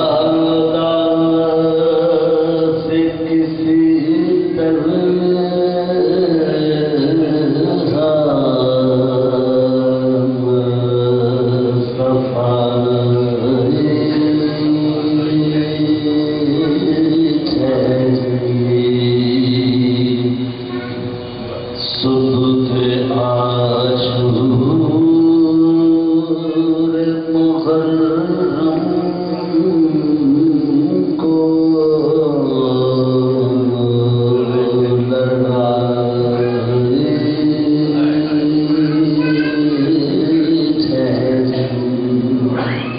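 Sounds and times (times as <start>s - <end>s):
men chanting: 0.0s - 20.9s, 22.0s - 42.9s.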